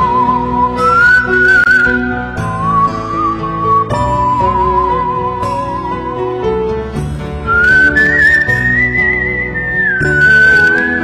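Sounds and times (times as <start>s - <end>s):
soft instrumental backing: 0.0s - 11.0s
whistled melody: 0.0s - 11.0s.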